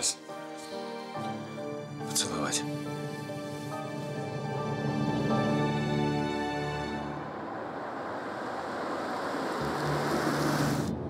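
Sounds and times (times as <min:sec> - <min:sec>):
low hum: 0:02.7 - 0:11.0
passing cars: 0:02.7 - 0:11.0.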